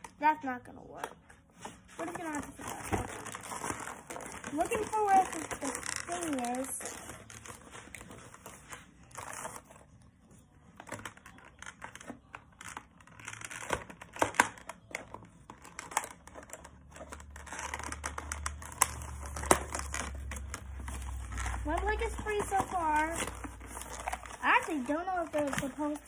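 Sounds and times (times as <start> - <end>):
plastic and cardboard crinkling: 1.2 - 26.0.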